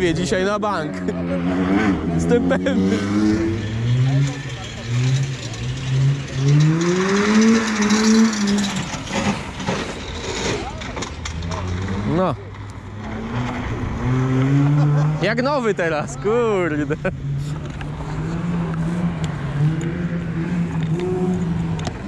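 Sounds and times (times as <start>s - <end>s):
car engine accelerating hard: 0.0s - 10.0s, 11.3s - 22.0s
engine revving: 0.0s - 22.0s.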